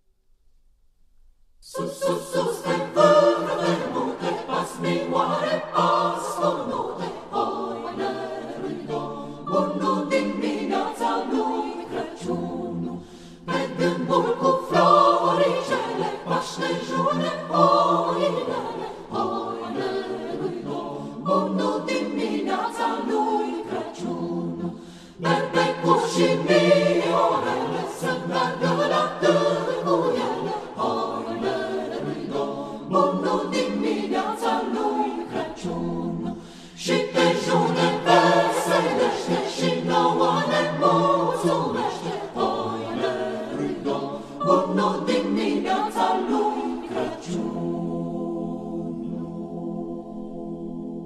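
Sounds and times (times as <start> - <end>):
choir singing a cappella: 1.6 - 51.0.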